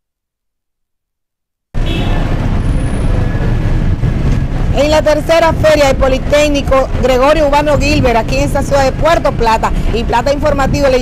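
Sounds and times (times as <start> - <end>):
outdoor background rumble: 1.8 - 11.0.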